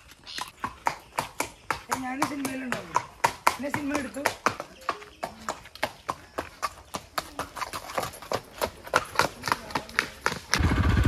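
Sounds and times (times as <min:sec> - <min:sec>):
horse hooves on brick paving: 0:00.0 - 0:11.0.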